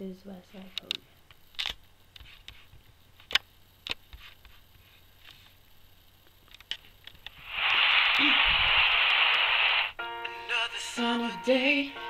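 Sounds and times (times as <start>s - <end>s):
loud steady static hiss: 0.0s - 12.0s.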